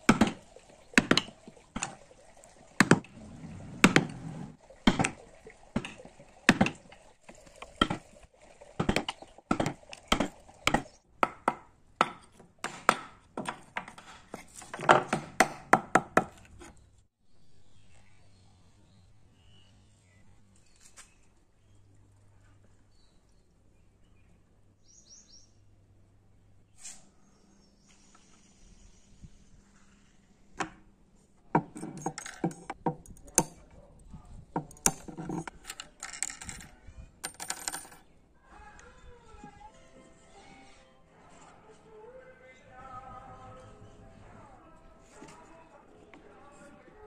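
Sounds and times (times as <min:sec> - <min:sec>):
chisel chopping into wood: 0:08.8 - 0:14.0, 0:14.8 - 0:16.5
steel wire clinking on wood: 0:31.6 - 0:33.8, 0:34.5 - 0:38.0.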